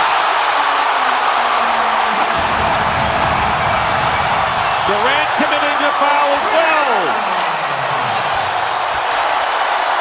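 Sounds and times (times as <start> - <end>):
crowd cheering: 0.0 - 10.0.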